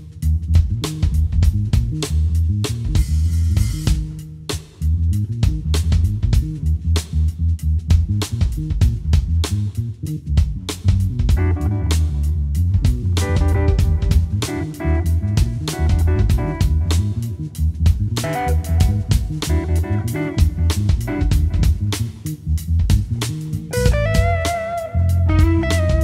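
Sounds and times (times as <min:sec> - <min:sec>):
drum kit cymbal strokes: 0:00.0 - 0:09.8, 0:10.7 - 0:26.0
walking electric bass: 0:00.0 - 0:26.0
electric guitar melody: 0:11.4 - 0:22.0, 0:23.6 - 0:26.0.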